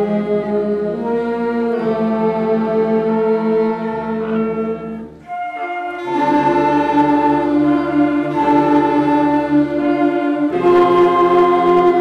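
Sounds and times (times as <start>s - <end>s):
concert band playing held chords: 3.8s - 12.0s.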